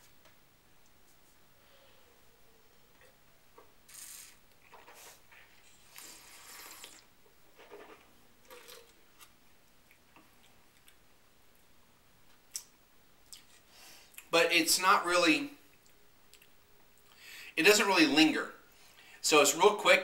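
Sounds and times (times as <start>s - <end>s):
wine slurping: 3.9s - 9.0s.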